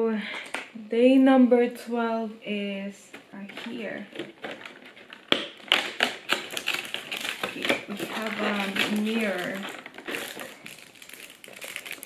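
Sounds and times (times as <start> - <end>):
cardboard clicking and snapping: 3.4 - 12.0.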